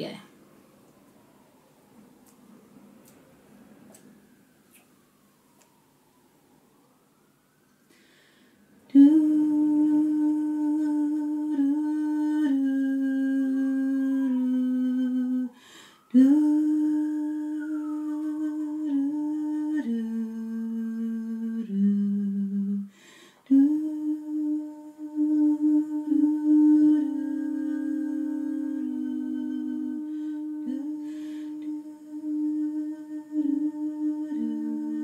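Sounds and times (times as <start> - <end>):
woman humming in harmony: 8.9 - 35.0.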